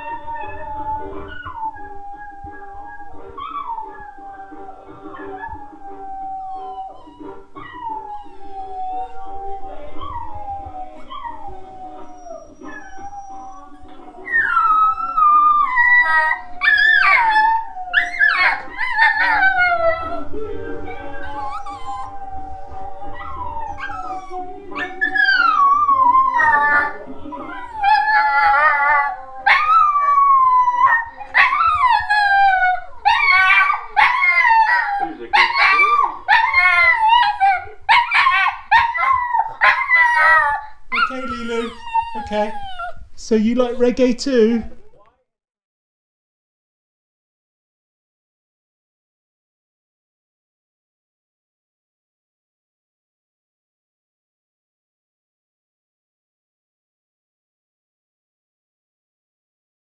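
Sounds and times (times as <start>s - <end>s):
reggae music from television: 0.0s - 42.2s, 43.0s - 45.0s
dog howling: 0.0s - 44.0s.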